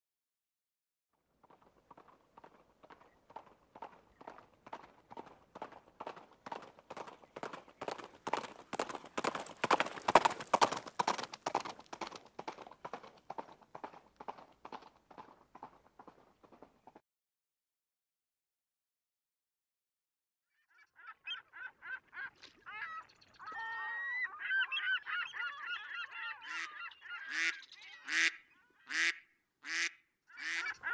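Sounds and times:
hooves clip-clopping on hard ground: 0:01.4 - 0:17.0
flock of birds calling: 0:20.9 - 0:29.2, 0:30.3 - 0:30.9.

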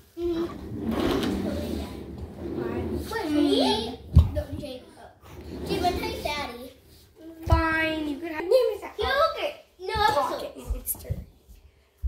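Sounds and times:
rustling and rattling: 0:00.2 - 0:07.8
young child's vocal sound: 0:00.2 - 0:11.2.

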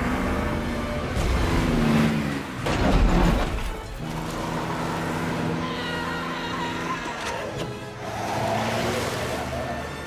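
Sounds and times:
off-road truck engine revving: 0:00.0 - 0:10.0.

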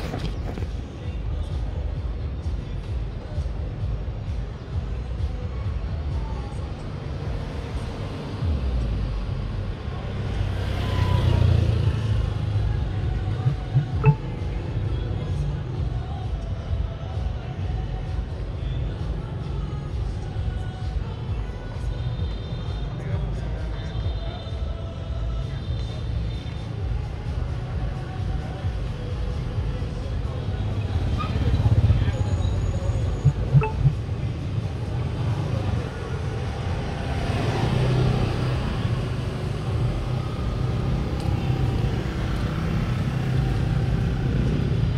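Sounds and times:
faint voices: 0:00.0 - 0:44.9
traffic rumble: 0:00.0 - 0:44.9.

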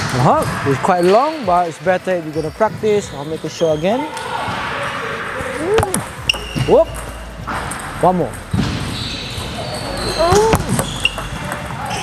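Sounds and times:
ball bouncing on table: 0:05.6 - 0:08.7, 0:10.2 - 0:11.9.

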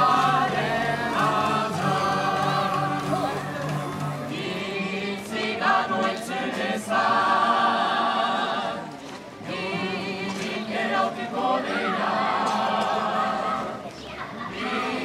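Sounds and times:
group of voices singing: 0:00.0 - 0:15.0.

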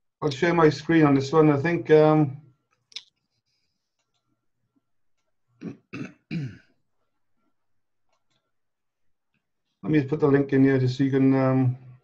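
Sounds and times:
man clearing his throat: 0:05.6 - 0:06.7.

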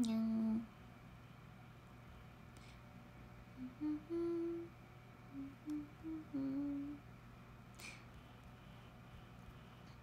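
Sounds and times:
woman humming a tune: 0:03.6 - 0:04.7, 0:05.3 - 0:07.0.

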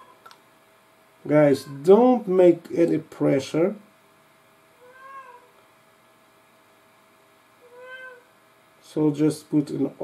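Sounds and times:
cat meowing faintly: 0:01.4 - 0:01.9, 0:04.7 - 0:05.6, 0:07.6 - 0:08.3.

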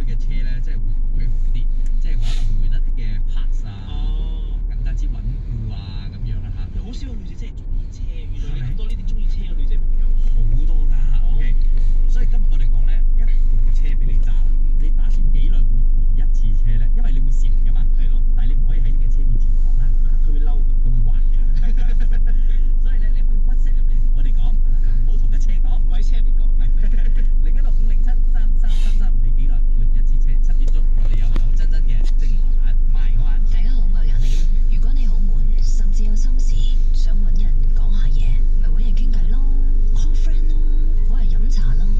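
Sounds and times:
car cabin low rumble: 0:00.0 - 0:41.9
indistinct voices: 0:00.0 - 0:41.9.

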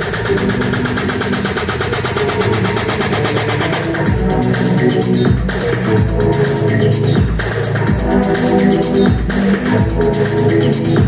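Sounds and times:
buzzing stuttered electronic pulses: 0:00.0 - 0:11.0
deep bass: 0:00.0 - 0:11.0
hi-hat ticks: 0:00.0 - 0:11.0.

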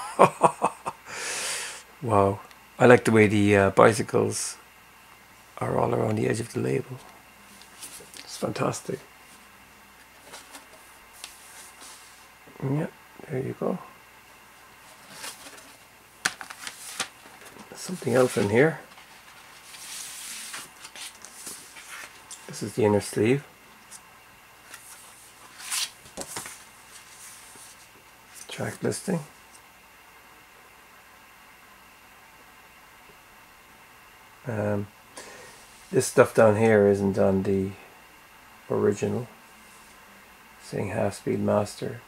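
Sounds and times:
faint room tone hiss: 0:00.0 - 0:42.0
vinyl record sleeve rustling: 0:06.2 - 0:12.4, 0:14.5 - 0:29.6.

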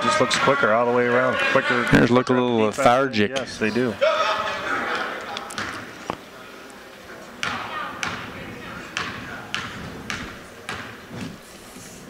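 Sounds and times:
basketball bouncing on hardwood floor: 0:09.0 - 0:11.0.

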